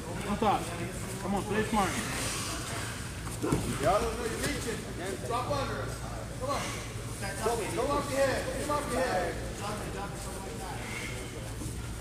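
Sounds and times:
gym hall background noise: 0.0s - 12.0s.

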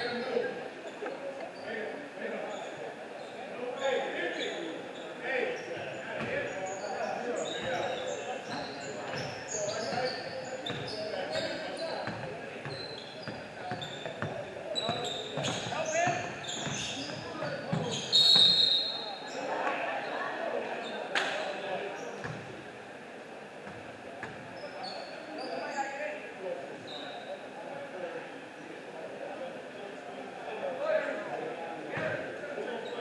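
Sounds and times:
sneakers squeaking: 4.3s - 20.1s, 23.6s - 25.9s.

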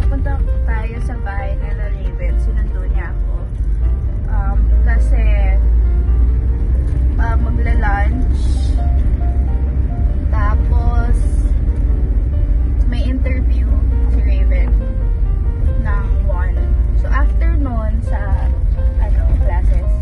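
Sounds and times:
woman speaking: 0.0s - 3.5s, 4.3s - 5.6s, 7.2s - 8.8s, 10.4s - 11.5s, 12.8s - 14.8s, 15.8s - 20.0s
car cabin rumble: 0.0s - 20.0s
music: 0.0s - 20.0s.

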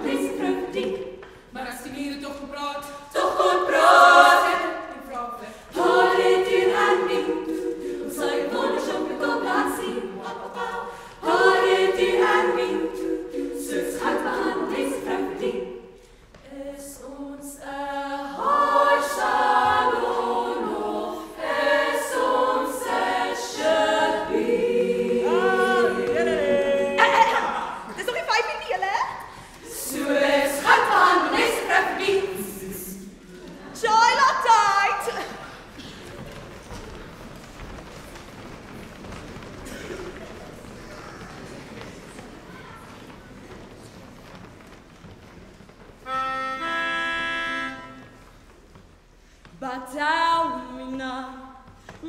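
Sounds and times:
women's choir singing: 0.0s - 1.5s, 2.3s - 37.5s, 49.5s - 52.0s.

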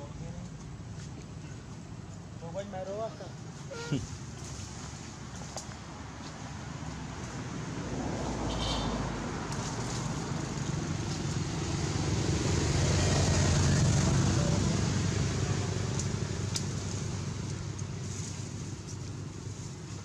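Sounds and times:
passing vehicle engine rumble: 0.0s - 20.0s.

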